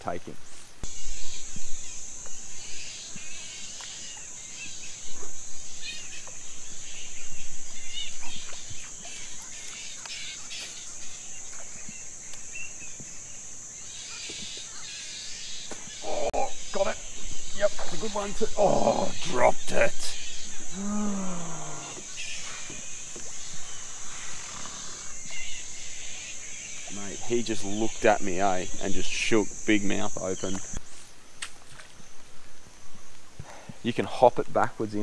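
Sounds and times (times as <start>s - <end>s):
man talking: 0.0s - 0.5s, 16.1s - 20.3s, 26.9s - 30.8s, 33.8s - 35.0s
bird calls: 0.0s - 31.1s
high-pitched insect drone: 0.9s - 30.8s.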